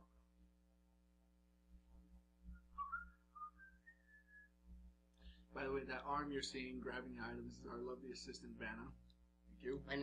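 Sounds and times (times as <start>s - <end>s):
person whistling: 2.5s - 4.6s.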